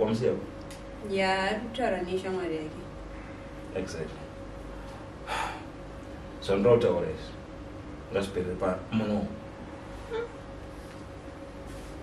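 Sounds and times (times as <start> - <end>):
faint steady hum: 0.0 - 12.0
person breathing: 5.2 - 5.7.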